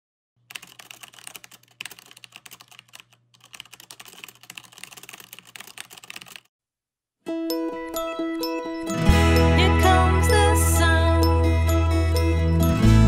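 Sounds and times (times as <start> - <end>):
keyboard typing clicks: 0.4 - 6.5.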